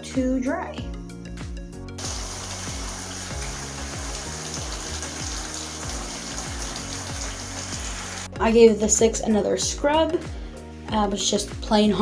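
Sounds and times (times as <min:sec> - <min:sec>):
background music with beat: 0:00.0 - 0:12.0
shower water spraying: 0:02.0 - 0:08.3.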